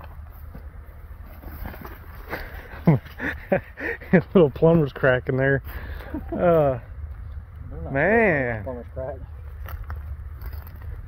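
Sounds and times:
steady low rumble: 0:00.0 - 0:11.0.

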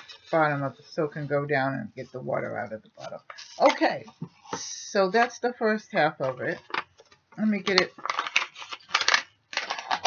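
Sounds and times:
packaging crinkling: 0:06.5 - 0:10.0.

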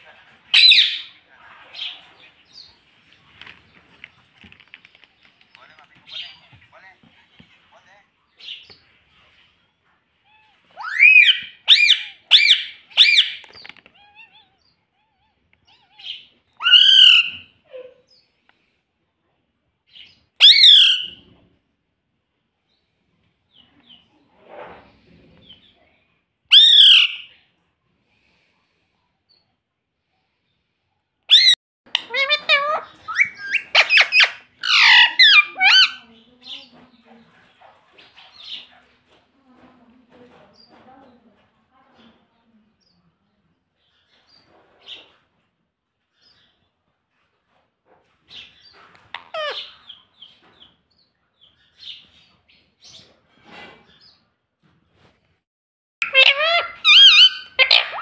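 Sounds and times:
parakeet squawking: 0:00.5 - 0:01.2, 0:10.3 - 0:17.4, 0:20.4 - 0:21.2, 0:26.5 - 0:27.3, 0:31.3 - 0:36.1, 0:49.1 - 0:50.0, 0:56.0 - 0:58.0
parakeet rapid chattering: 0:31.3 - 0:36.6, 0:56.0 - 0:58.0.

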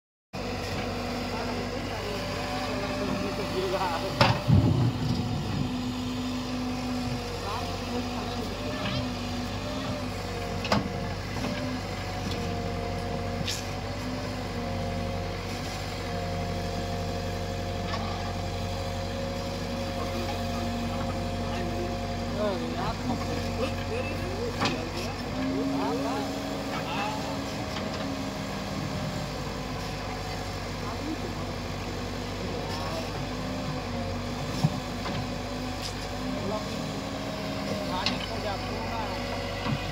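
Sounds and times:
diesel engine under load: 0:00.4 - 0:39.9.

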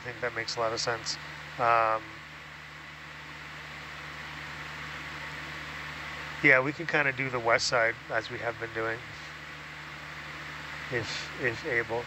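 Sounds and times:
background hiss: 0:00.0 - 0:12.0
low electrical hum: 0:00.0 - 0:12.0.

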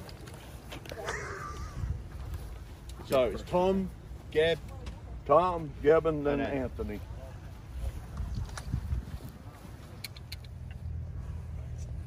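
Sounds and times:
wind buffeting microphone: 0:01.2 - 0:02.6, 0:07.8 - 0:09.8.

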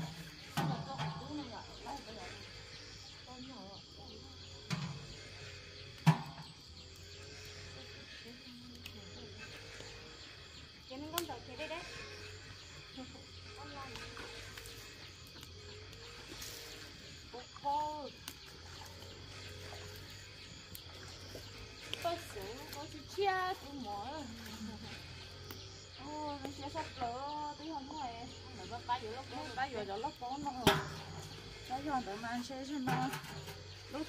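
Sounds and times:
women talking: 0:00.6 - 0:04.3, 0:08.1 - 0:09.7, 0:10.8 - 0:14.4, 0:17.3 - 0:18.3, 0:21.9 - 0:25.2, 0:25.8 - 0:34.0.

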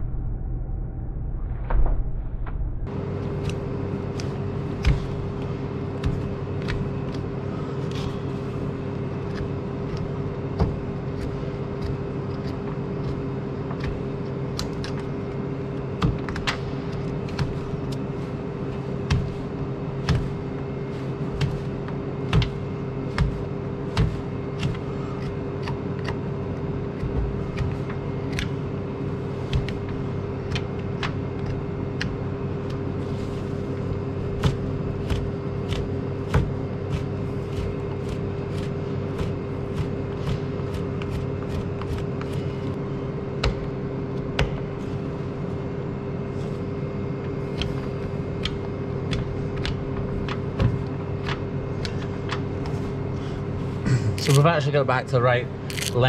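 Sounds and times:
low machine hum: 0:00.0 - 0:56.0.

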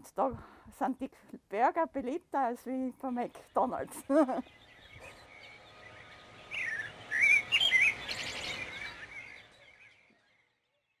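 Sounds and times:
faint outdoor hiss: 0:00.0 - 0:11.0
songbirds chirping and warbling: 0:02.2 - 0:11.0.

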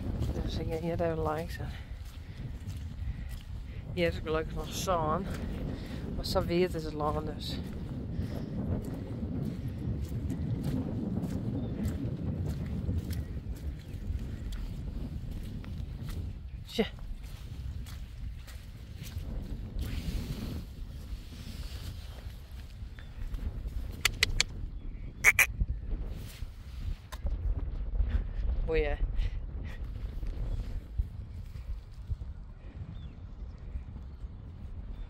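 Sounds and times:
wind rumbling on microphone: 0:00.0 - 0:35.0
sharp clicks: 0:24.0 - 0:24.5.

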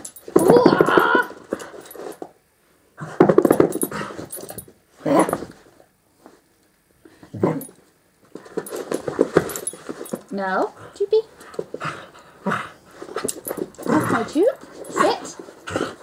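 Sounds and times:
dog growling: 0:07.3 - 0:07.8, 0:11.8 - 0:16.0.

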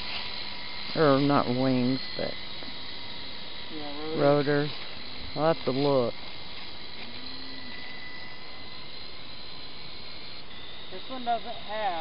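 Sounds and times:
toy helicopter motor whine: 0:00.0 - 0:12.0.

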